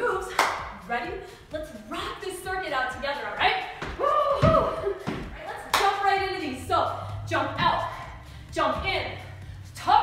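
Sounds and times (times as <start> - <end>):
woman speaking: 0.0 - 3.7, 5.3 - 10.0
foot landing thud: 3.8 - 5.4.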